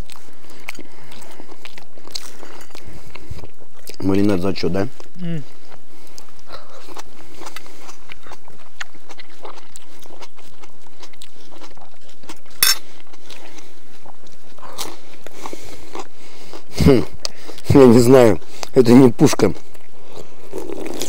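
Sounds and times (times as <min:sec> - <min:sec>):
people chewing food: 0:00.0 - 0:21.0.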